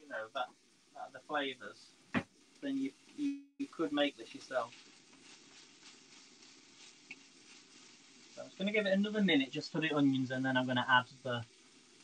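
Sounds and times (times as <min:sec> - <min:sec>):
onions frying in a pan: 0:00.1 - 0:12.0.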